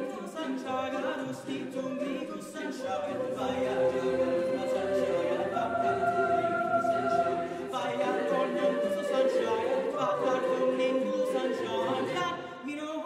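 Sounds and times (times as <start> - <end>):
choir singing a cappella: 0.0 - 13.0.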